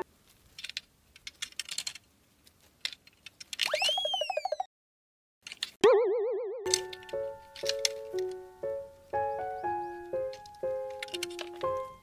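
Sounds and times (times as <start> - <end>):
cartoon whistle swooping: 3.7 - 4.7
loud wobbling boing: 5.8 - 6.7
background music: 6.7 - 12.0.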